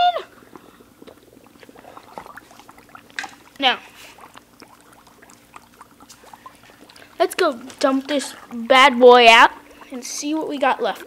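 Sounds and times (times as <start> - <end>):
dry ice bubbling in water: 0.0 - 11.0.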